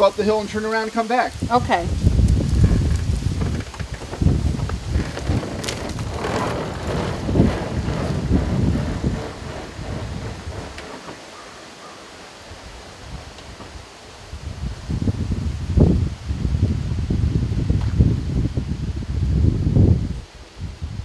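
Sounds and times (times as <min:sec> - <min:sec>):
wind buffeting the microphone: 0:00.0 - 0:11.4, 0:12.4 - 0:21.0
pedal vehicle rolling on asphalt: 0:01.9 - 0:14.7.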